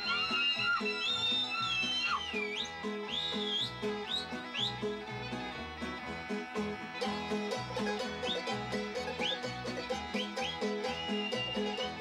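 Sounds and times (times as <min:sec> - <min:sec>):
high whistle-like melody: 0:00.0 - 0:05.0, 0:07.0 - 0:12.0
plucked strings bouncing beat: 0:02.1 - 0:12.0.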